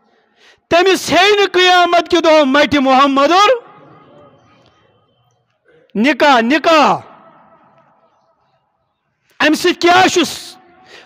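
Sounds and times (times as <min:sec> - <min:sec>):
man speaking over loudspeaker: 0:00.6 - 0:04.7, 0:05.7 - 0:07.5, 0:09.3 - 0:11.0.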